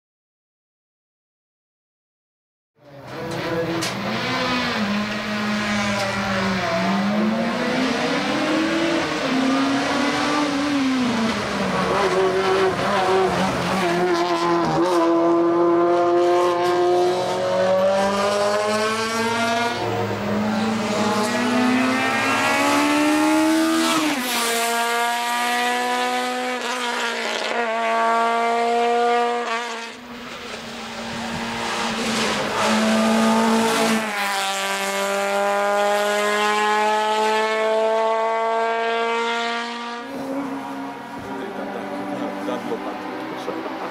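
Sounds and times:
race car engine revving: 2.9 - 43.9.

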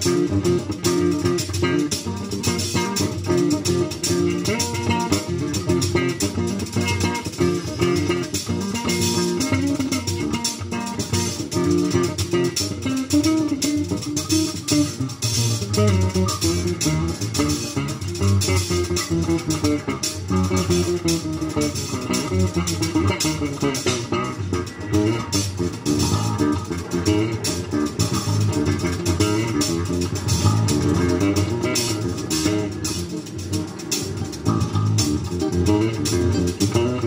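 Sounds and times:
acoustic guitar: 0.0 - 37.0
drum kit with cymbals: 0.0 - 37.0
electric bass guitar: 0.0 - 37.0.

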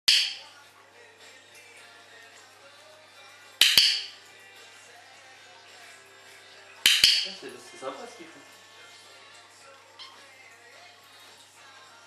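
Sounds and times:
faint background music: 0.1 - 12.0.

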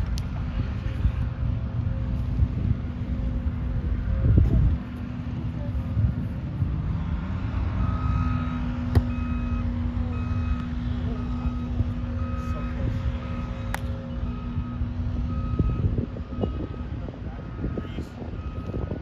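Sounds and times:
wind on microphone: 0.0 - 7.2, 14.4 - 19.0
low engine rumble: 0.0 - 19.0
reversing alarm beeping: 7.7 - 19.0.

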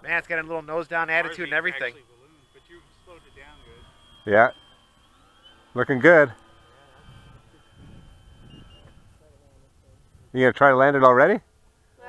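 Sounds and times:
model airplane engine drone: 0.0 - 12.0.

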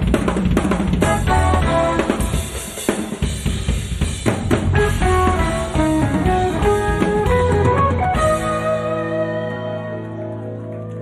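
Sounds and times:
busy drum kit: 0.0 - 11.0
quick melody line: 1.0 - 3.4, 4.5 - 11.0
low bass line: 4.4 - 11.0.

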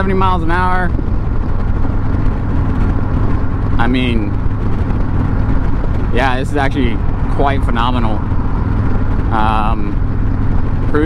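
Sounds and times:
motorcycle engine rumble: 0.0 - 11.0
road noise: 0.0 - 11.0
wind rush: 0.0 - 11.0.

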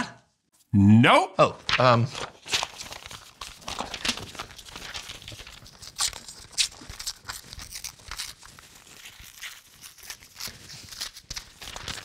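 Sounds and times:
paper crinkling: 1.6 - 12.0
paper tearing: 1.6 - 12.0.

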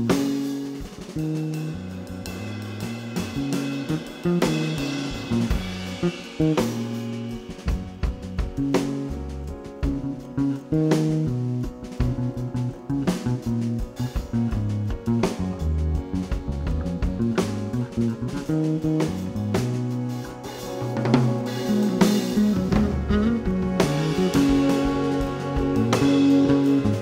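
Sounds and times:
cymbals: 0.0 - 10.3, 17.4 - 27.0
drum kit beat: 0.0 - 27.0
electric bass guitar line: 0.0 - 27.0
electric guitar: 0.0 - 27.0.

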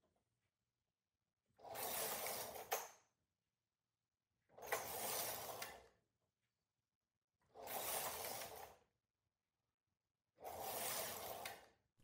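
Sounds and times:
knitting machine carriage sliding: 1.6 - 3.0, 4.5 - 6.0, 7.4 - 8.9, 10.4 - 11.8.

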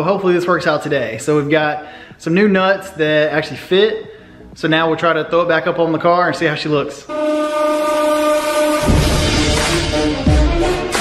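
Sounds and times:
long held chord: 7.1 - 11.0.

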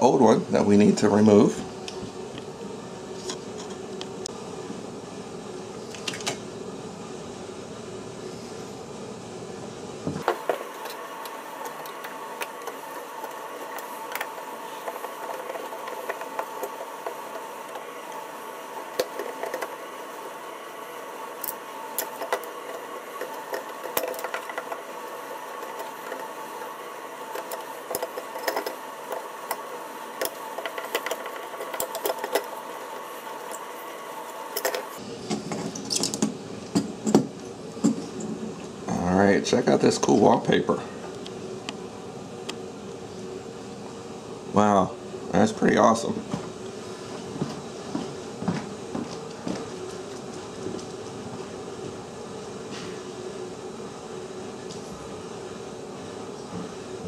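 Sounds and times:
steady hum: 0.0 - 57.0
screwdriver clicking and scraping: 27.3 - 29.6, 30.2 - 33.7, 34.5 - 34.9.

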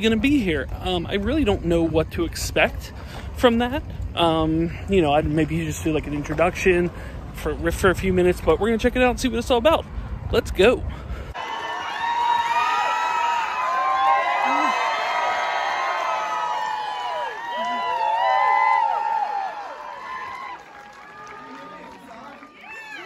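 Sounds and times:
audience cheering and screaming: 11.4 - 21.8.

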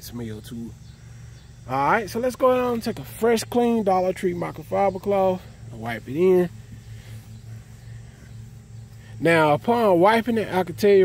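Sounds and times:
low hum: 0.0 - 11.0
cloth rubbing on car paint: 5.9 - 9.3.

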